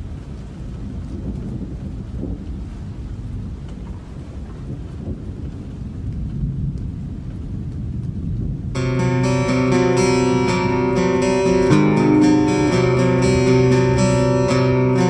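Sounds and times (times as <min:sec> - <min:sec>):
low rumbling noise: 0:08.8 - 0:15.0.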